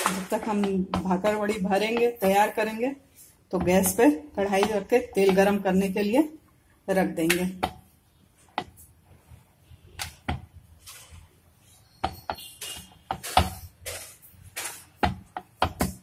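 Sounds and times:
rolling pin on wooden board: 3.6 - 5.5, 12.0 - 16.0.

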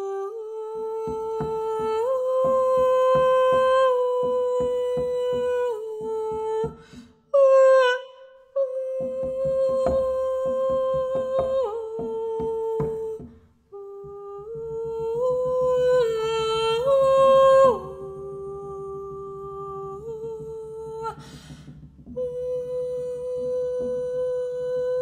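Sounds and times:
woman humming: 0.0 - 21.5, 22.2 - 25.0
fingers knocking on hard surface: 1.0 - 7.0, 8.8 - 22.6.

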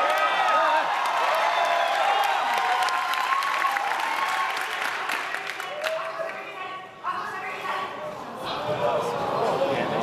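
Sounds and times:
crowd applauding: 0.0 - 6.4.

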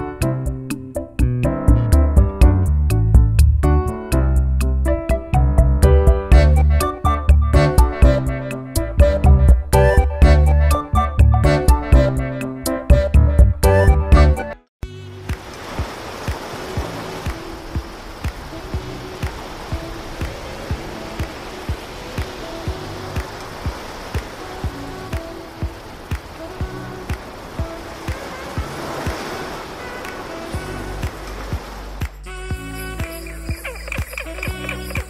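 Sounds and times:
background music with beat: 0.0 - 14.6, 15.2 - 35.0
surf: 14.9 - 35.0.

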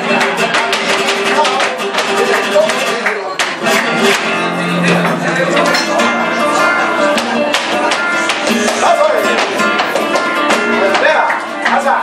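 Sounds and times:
flamenco guitar playing: 0.0 - 12.0
hand-clapping: 0.0 - 12.0.

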